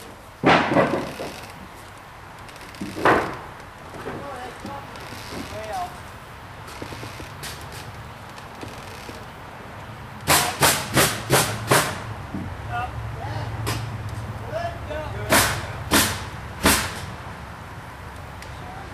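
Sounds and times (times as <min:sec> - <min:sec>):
hammer striking wood: 0:00.4 - 0:01.3, 0:10.2 - 0:12.5, 0:15.3 - 0:17.0.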